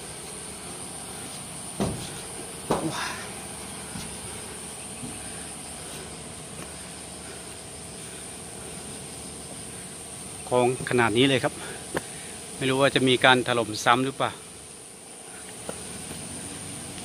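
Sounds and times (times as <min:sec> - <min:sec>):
high-pitched insect chorus: 0:00.0 - 0:17.0.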